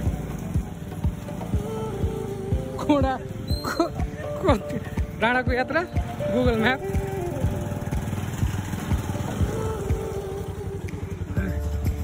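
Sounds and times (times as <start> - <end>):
motorcycle engine running: 0.0 - 12.0
road noise: 0.0 - 12.0.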